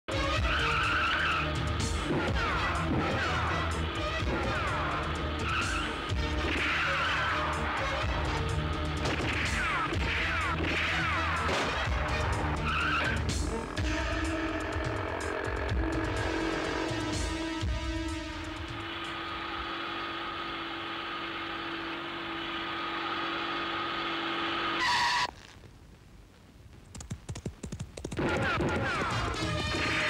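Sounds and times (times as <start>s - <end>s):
background music: 0.1s - 20.0s, 28.1s - 30.0s
motorcycle and jeep engines: 11.4s - 24.4s.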